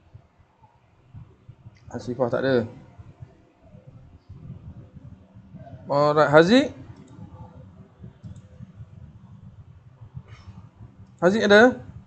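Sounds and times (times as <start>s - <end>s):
microphone background rumble: 0.0s - 12.0s
faint clicks: 6.9s - 7.4s, 8.1s - 8.8s.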